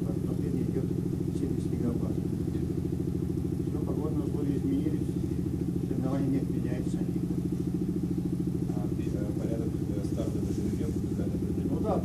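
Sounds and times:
pulsing mechanical drone: 0.0 - 12.0.

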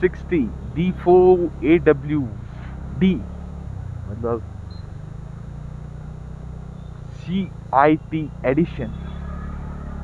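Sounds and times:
scooter engine running: 0.0 - 10.0.

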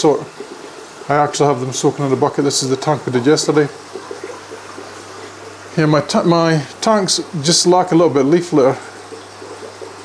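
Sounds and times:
water trickling and bubbling: 0.0 - 10.0.

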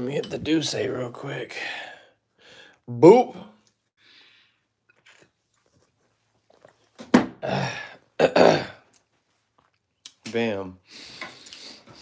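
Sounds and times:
man coughing raspily: 7.4 - 8.8.

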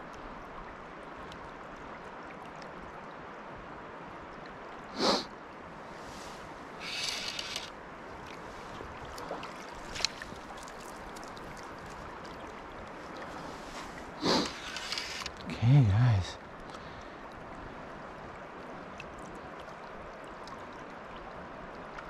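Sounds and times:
stream flowing over rocks: 0.0 - 22.0.

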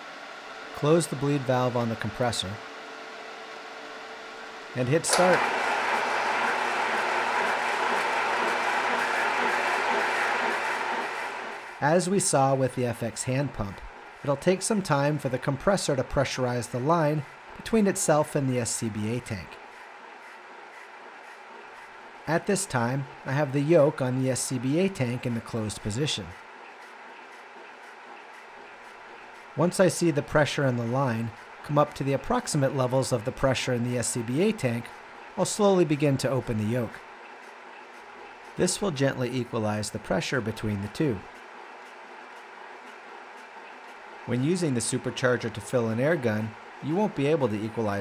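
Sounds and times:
air compressor running: 4.8 - 11.9.

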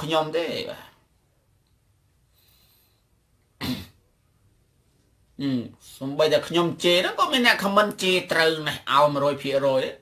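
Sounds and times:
person clearing throat: 3.6 - 4.1.

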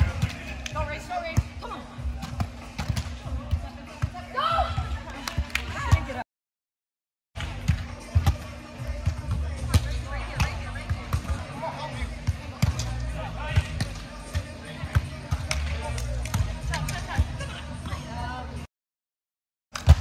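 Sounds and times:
background music: 7.4 - 18.7
hands slapping volleyball: 15.3 - 17.1.

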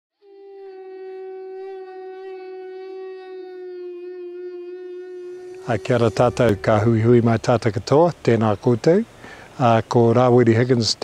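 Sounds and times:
long horn note: 0.3 - 7.8.

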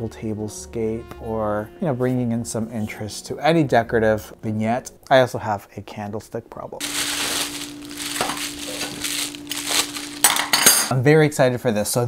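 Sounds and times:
plastic and bubble wrap crinkling: 6.8 - 10.6
metal cutlery clinking: 8.1 - 10.9.

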